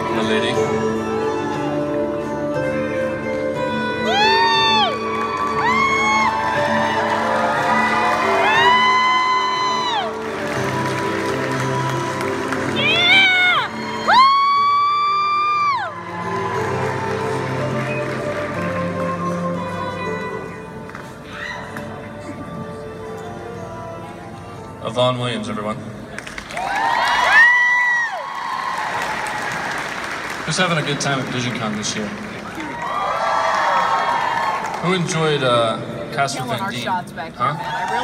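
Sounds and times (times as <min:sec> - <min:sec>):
background music: 0:00.0 - 0:38.0
audience cheering and whooping: 0:04.0 - 0:18.2, 0:26.5 - 0:30.2, 0:32.4 - 0:34.9, 0:37.5 - 0:38.0.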